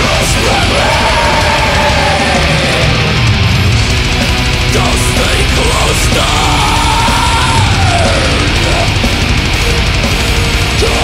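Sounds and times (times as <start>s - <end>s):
long yelled vocal: 0.0s - 3.2s, 4.9s - 9.0s
distorted guitars: 0.0s - 11.0s
fast dense drumming: 0.0s - 11.0s.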